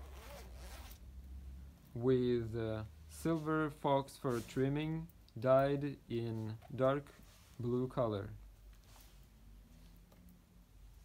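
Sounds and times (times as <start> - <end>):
jacket zipper unzipping: 0.0 - 1.0.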